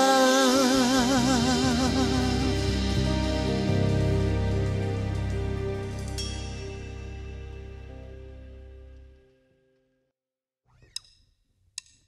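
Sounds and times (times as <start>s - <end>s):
live band held chord: 0.0s - 9.1s.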